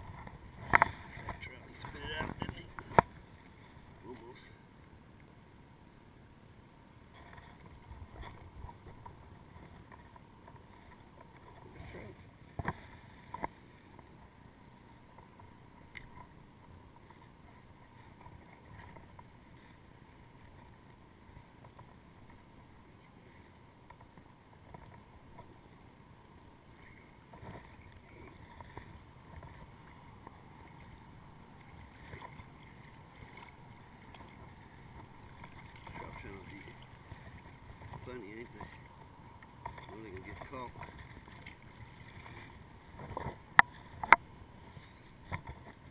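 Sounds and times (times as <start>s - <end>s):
quiet water sounds: 0.0s - 45.9s.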